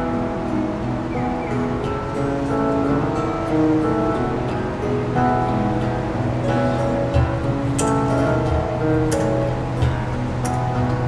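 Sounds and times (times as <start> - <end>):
acoustic guitars: 0.0 - 11.0
melody of long held notes: 0.0 - 11.0.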